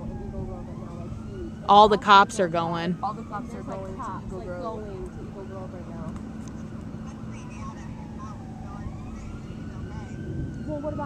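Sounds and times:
distant siren wailing: 0.0 - 11.0
faint voices: 0.0 - 11.0
low outdoor rumble: 0.0 - 11.0.

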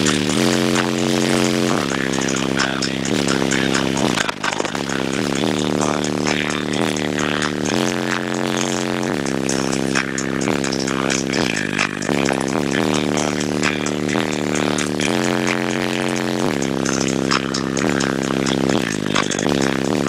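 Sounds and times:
bass-heavy music through car stereo: 0.0 - 20.0.

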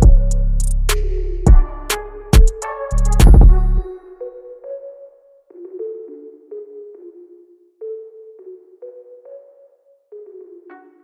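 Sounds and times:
electronic melody: 0.0 - 11.0.

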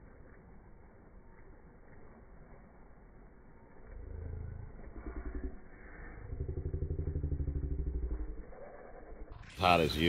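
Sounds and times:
engine running with low putter: 0.0 - 9.5.

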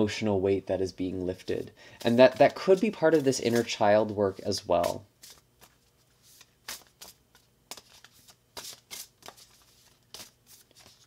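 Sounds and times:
cards being shuffled: 1.4 - 11.0.

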